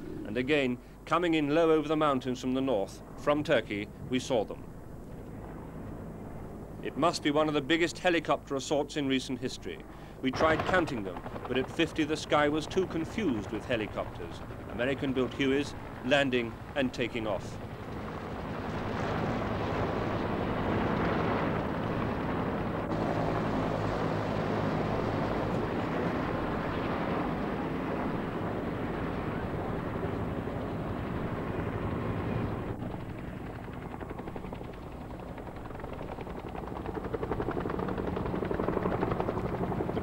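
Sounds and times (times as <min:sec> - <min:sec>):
helicopter rotors and turbines: 0:00.0 - 0:40.0.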